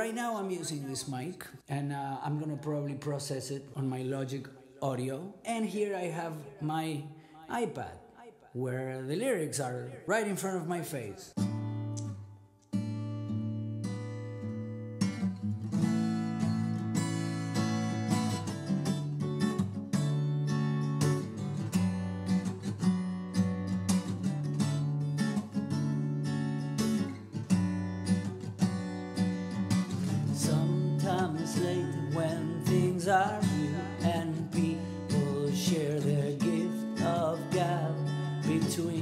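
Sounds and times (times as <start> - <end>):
acoustic guitar strumming chords: 11.4 - 39.0.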